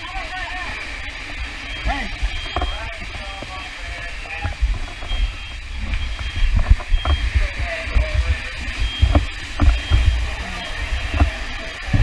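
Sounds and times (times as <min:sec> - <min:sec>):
faint voices of firefighters: 0:00.0 - 0:12.0
steady hiss: 0:00.0 - 0:12.0
microphone bumping and rubbing: 0:04.4 - 0:12.0.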